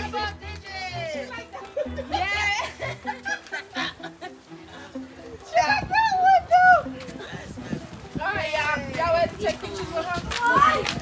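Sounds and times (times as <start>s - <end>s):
murmured chatter: 3.9s - 11.0s
children whooping and squealing: 10.4s - 11.0s.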